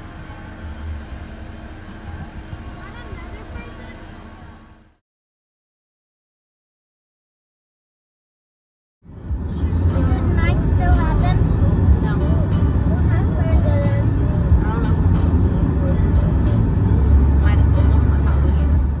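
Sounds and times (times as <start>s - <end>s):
car cabin road rumble: 0.0s - 5.0s, 9.0s - 19.0s
indistinct voices: 9.3s - 19.0s.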